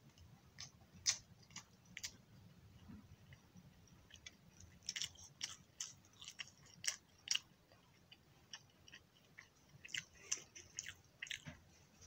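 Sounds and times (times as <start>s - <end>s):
wet chewing mouth sounds: 3.3s - 11.6s.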